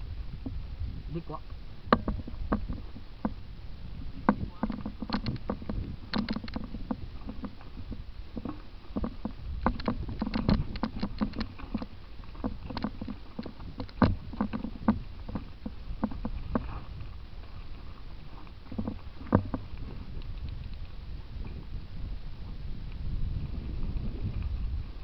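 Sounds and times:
bike clattering over stones: 4.3 - 17.0.

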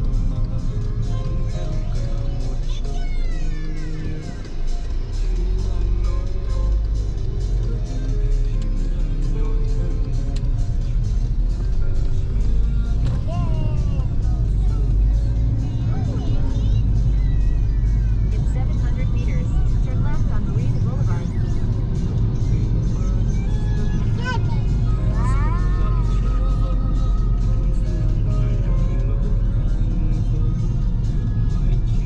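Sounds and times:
car cabin rumble: 0.0 - 32.0
music with singing voice: 0.0 - 32.0.

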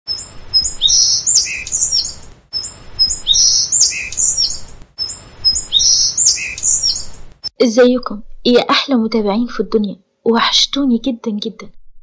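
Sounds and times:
birds chirping and whistling: 0.1 - 7.5.

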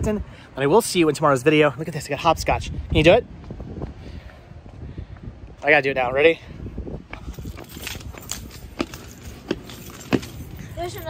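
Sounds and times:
footfalls on concrete: 7.0 - 11.0.

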